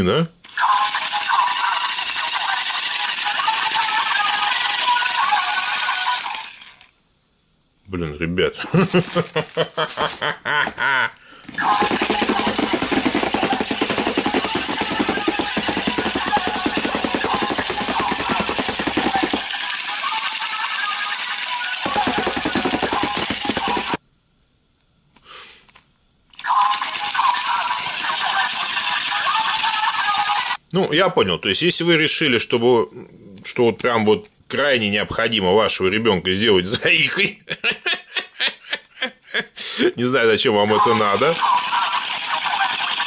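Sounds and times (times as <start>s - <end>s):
toy motor rattling and buzzing: 0.4s - 6.9s, 11.5s - 24.0s, 26.4s - 30.6s, 40.7s - 43.0s.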